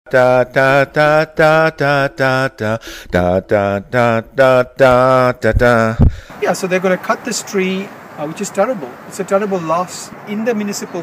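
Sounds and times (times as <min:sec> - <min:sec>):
person chanting: 0:00.1 - 0:06.0.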